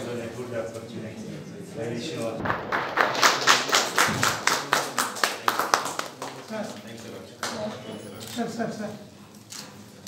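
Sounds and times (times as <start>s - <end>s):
hands clapping rhythmically: 2.4s - 7.7s.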